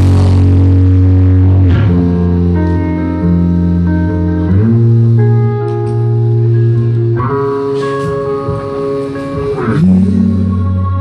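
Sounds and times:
electric guitar chords ringing: 0.0s - 11.0s
rock band playing: 0.0s - 11.0s.

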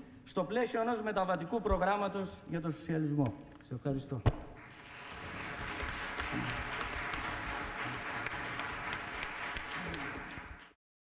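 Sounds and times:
audience applauding: 4.6s - 10.8s.

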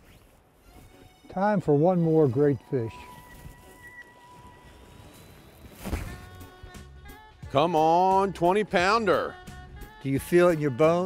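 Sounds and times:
faint wind: 0.0s - 8.2s.

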